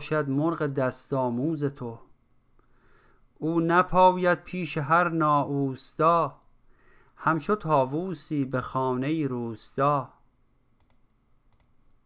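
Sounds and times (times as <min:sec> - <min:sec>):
man speaking: 0:00.0 - 0:02.1, 0:03.4 - 0:06.4, 0:07.2 - 0:10.2
computer mouse clicking: 0:10.8 - 0:12.0.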